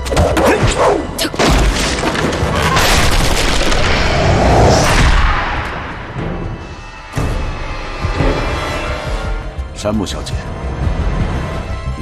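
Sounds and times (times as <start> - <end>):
dramatic music: 0.0 - 12.0.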